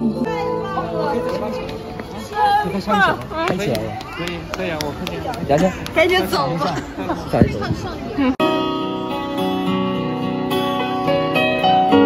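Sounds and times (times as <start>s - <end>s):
light outdoor background: 0.0s - 12.0s.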